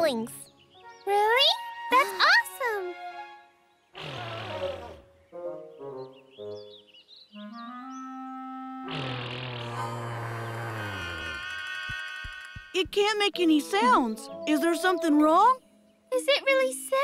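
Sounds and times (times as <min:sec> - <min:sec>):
deep horn-like dinosaur honks: 0:08.4 - 0:11.6.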